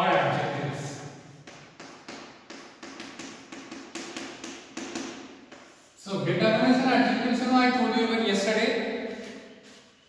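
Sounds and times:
chalk tapping and scraping on chalkboard: 1.3 - 6.0.

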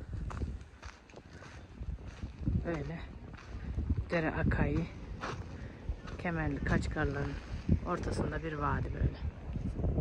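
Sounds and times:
wind on microphone: 0.0 - 10.0.

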